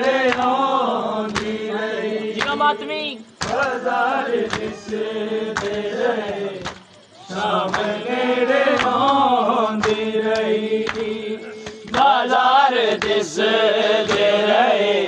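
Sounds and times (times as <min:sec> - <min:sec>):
men chanting together: 0:00.0 - 0:15.0
sharp rhythmic slaps: 0:00.0 - 0:15.0.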